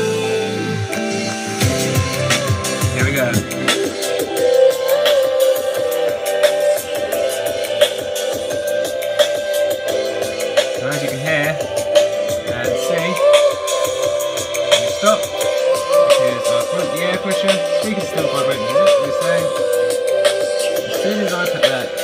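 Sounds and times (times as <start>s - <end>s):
song with vocals through speaker: 0.0s - 22.0s.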